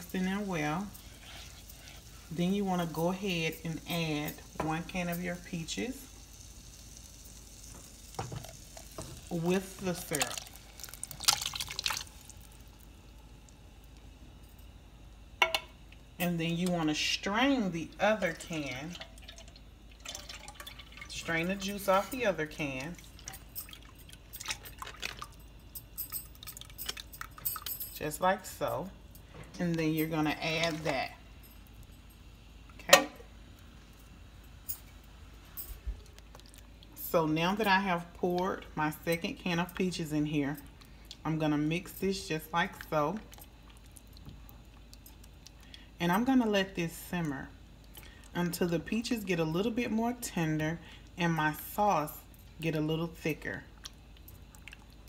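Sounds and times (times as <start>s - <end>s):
butter and sugar sizzling in saucepan: 0.0s - 14.5s, 16.2s - 24.9s
tin can clinking against saucepan: 15.4s - 15.7s.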